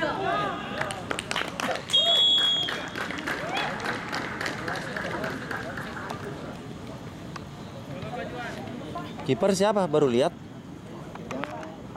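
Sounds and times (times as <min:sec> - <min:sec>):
players calling and shouting: 0:00.0 - 0:04.1
referee whistle blast: 0:01.9 - 0:03.0.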